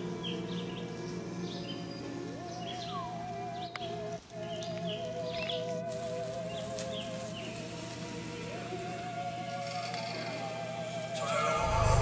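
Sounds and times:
wavering synthetic tone: 11.1 - 12.0
higher synthetic tone: 11.2 - 12.0
low pulsing rumble: 11.6 - 12.0.

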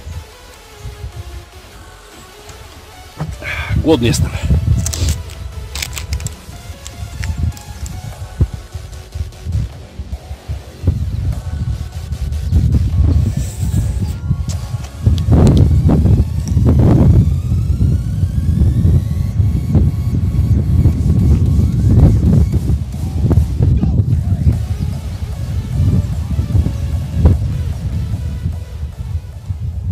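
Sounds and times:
wind buffeting the microphone: 3.2 - 29.9.

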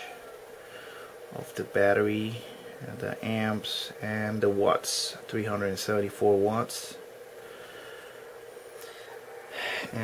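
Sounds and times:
cooling fan humming: 0.0 - 10.0.

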